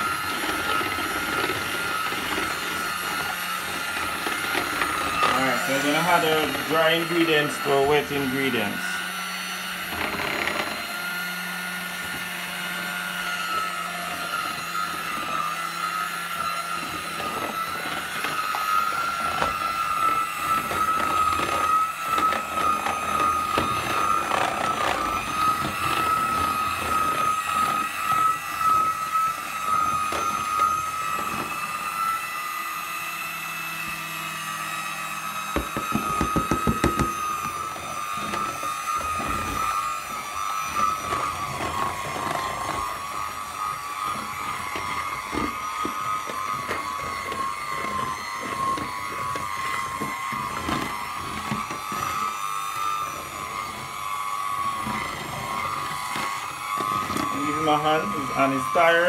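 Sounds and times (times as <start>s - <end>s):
mixer beaters clattering: 0.0s - 32.3s, 35.4s - 59.0s
electric hand mixer whining: 0.0s - 59.0s
knocks: 35.6s - 37.2s.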